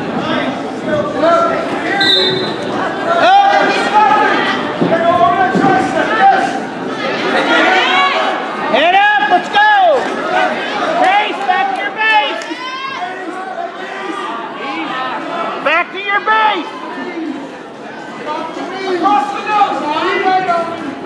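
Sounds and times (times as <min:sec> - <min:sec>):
crowd chatter: 0:00.0 - 0:21.0
voices calling out and shouting: 0:00.0 - 0:21.0.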